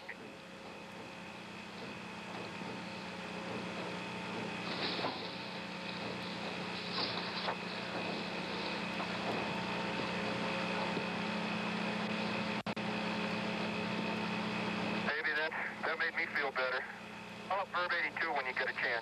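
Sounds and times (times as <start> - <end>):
constant low hum: 0.0 - 19.0
faint steady tones: 0.0 - 19.0
radio static hiss: 0.0 - 19.0
voice over radio: 15.1 - 19.0.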